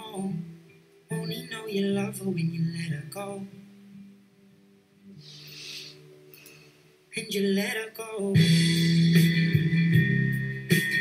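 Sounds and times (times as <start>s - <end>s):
person singing: 0.0s - 0.4s, 1.1s - 3.6s, 7.1s - 9.0s.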